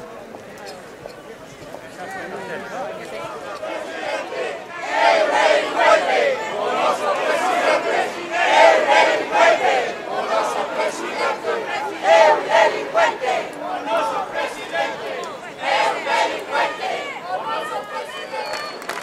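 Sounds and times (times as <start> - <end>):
crowd shouting slogans: 2.3 - 18.8.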